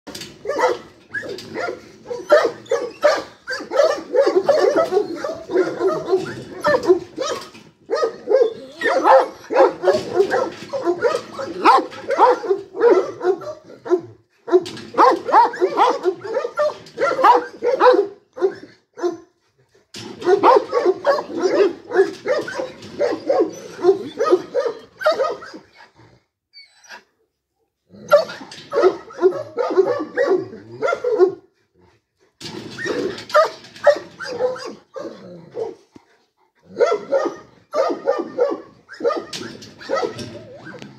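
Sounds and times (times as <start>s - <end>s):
large dog barking: 0.2s - 19.4s, 20.0s - 25.6s, 27.9s - 31.6s, 32.8s - 35.8s, 36.6s - 40.8s.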